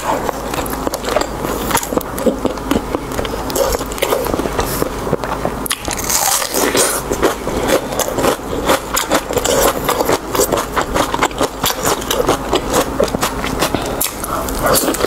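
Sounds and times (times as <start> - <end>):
chewing with mouth clicks: 0.0 - 15.0.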